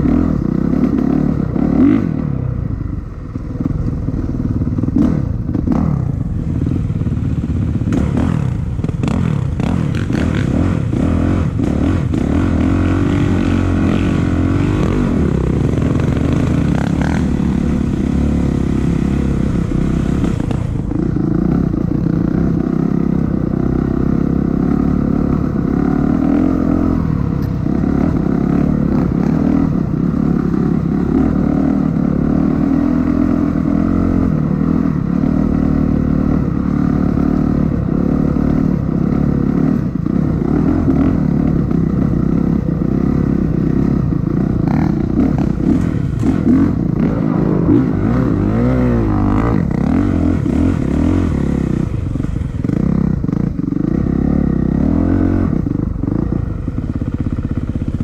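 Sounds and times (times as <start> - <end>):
dirt bike engine running: 0.0 - 58.0.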